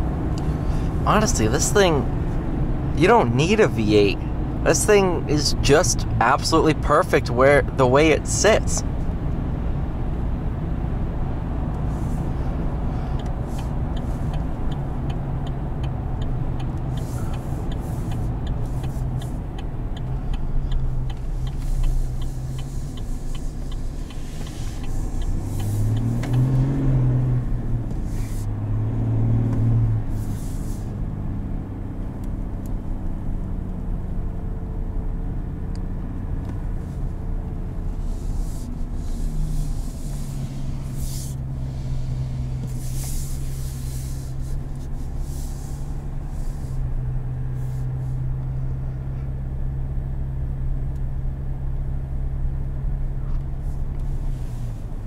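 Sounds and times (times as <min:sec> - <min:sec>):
diesel engine accelerating: 0:00.0 - 0:55.0
light rapid ticking: 0:13.0 - 0:26.6.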